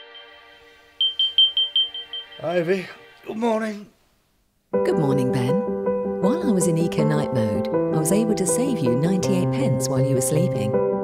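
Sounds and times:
soft background music: 0:00.0 - 0:04.0, 0:04.7 - 0:11.0
rapid high alarm beeps: 0:01.0 - 0:02.6.

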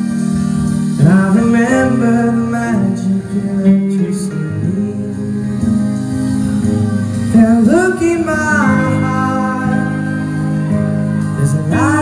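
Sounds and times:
strummed acoustic guitar: 0:00.0 - 0:12.0
man singing: 0:00.9 - 0:12.0.

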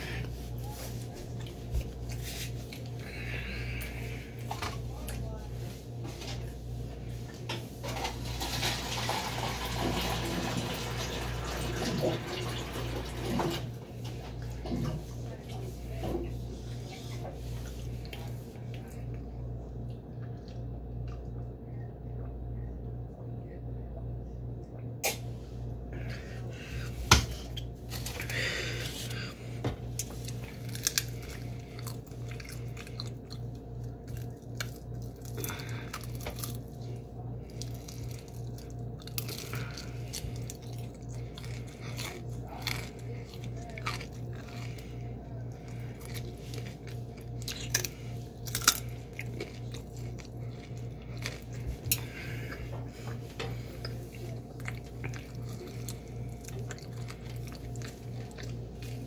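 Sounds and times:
chewing crunchy fried chicken: 0:00.0 - 0:22.5, 0:25.0 - 0:59.0
low hum: 0:12.9 - 0:59.0.

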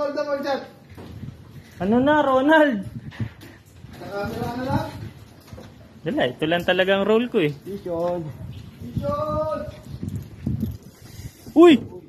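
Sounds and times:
man calling out: 0:08.9 - 0:09.8.

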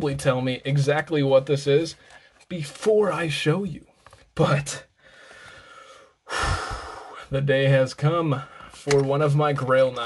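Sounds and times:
man breathing: 0:05.0 - 0:07.3, 0:08.4 - 0:08.8.

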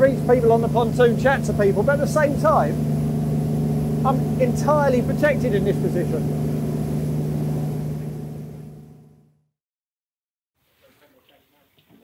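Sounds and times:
boat diesel engines droning: 0:00.0 - 0:09.3.

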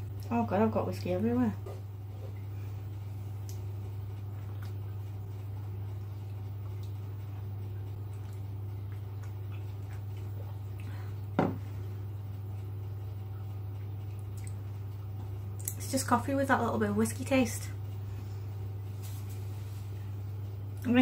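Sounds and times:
steady low hum: 0:00.0 - 0:21.0
mug knocking on counter: 0:11.4 - 0:11.6.

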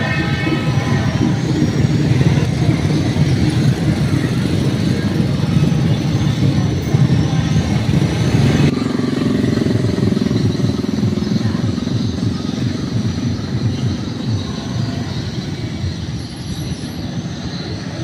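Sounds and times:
motorcycle engines running: 0:00.0 - 0:18.0
street traffic: 0:00.0 - 0:18.0.

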